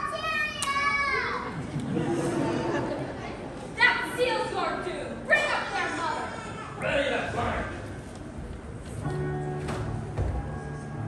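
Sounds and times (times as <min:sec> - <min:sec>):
child's high-pitched shout: 0:00.0 - 0:01.6
children talking: 0:00.0 - 0:07.6.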